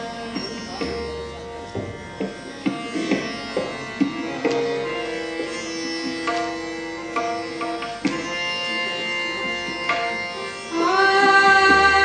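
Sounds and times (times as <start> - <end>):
tanpura drone: 0.0 - 12.0
sharp string stroke: 2.6 - 10.7.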